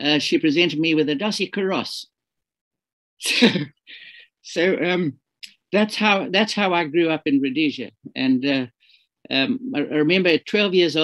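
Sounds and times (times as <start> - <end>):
man laughing: 3.2 - 4.2.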